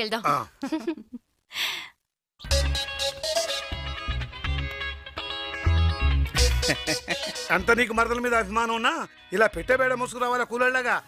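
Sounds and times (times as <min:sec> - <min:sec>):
person sighing: 0:01.5 - 0:02.0
music with bass beat and guitar: 0:02.4 - 0:10.1.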